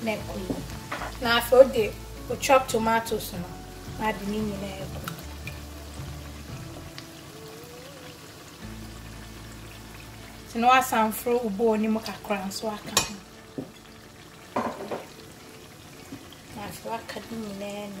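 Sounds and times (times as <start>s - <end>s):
onions sizzling in oil: 0.0s - 18.0s.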